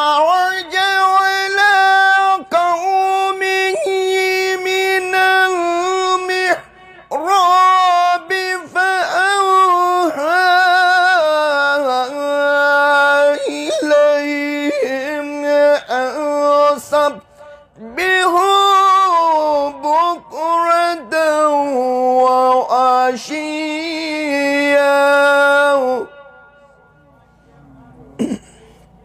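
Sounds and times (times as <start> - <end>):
man chanting recitation: 0.0 - 29.0.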